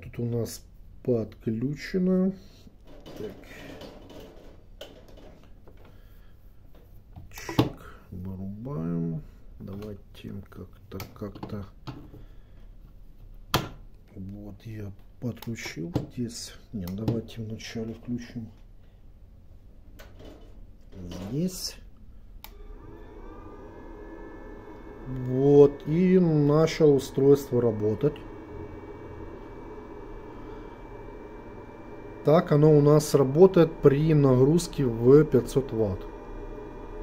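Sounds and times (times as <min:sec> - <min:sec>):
faint low hum: 0:14.0 - 0:37.0
inverter high whine: 0:22.5 - 0:37.0.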